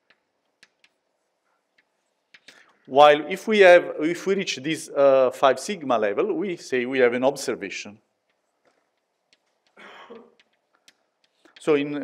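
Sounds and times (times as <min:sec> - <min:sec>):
faint chalk ticks on blackboard: 0:00.0 - 0:03.0, 0:08.2 - 0:12.0.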